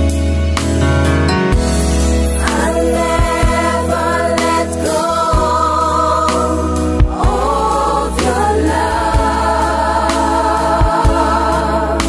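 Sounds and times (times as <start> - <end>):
bass line: 0.0 - 12.0
choir singing in harmony: 2.2 - 12.0.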